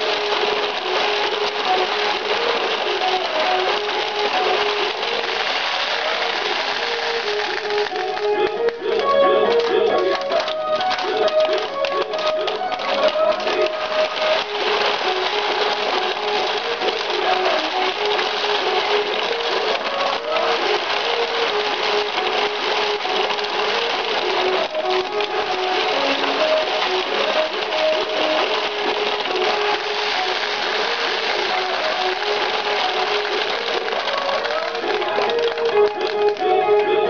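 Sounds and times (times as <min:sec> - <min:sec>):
steel balls clattering: 0:00.0 - 0:36.4.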